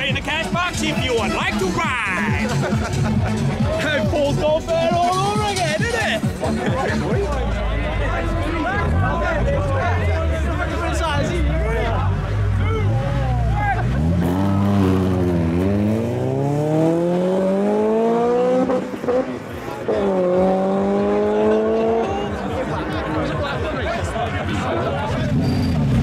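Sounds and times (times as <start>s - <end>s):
racing car engines accelerating: 5.6s - 26.0s.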